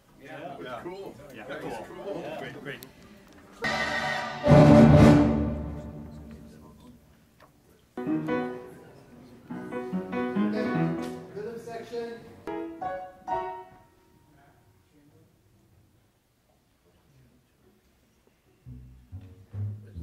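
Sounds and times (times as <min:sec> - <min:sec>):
orchestral music with piano: 0:03.6 - 0:06.4, 0:12.5 - 0:13.8.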